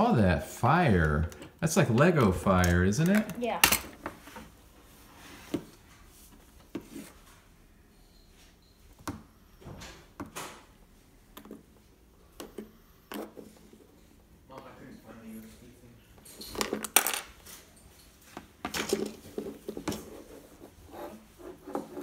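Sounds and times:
plastic toys clicking and knocking: 1.0 - 4.1, 16.4 - 17.3.

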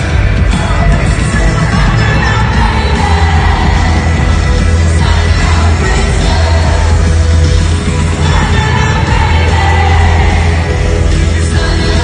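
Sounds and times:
heavy bass: 0.0 - 12.0
live rock band playing: 0.0 - 12.0.

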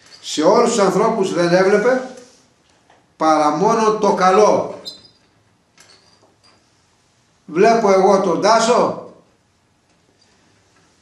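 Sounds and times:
man speaking: 0.2 - 2.3, 3.2 - 4.9, 7.5 - 9.2.

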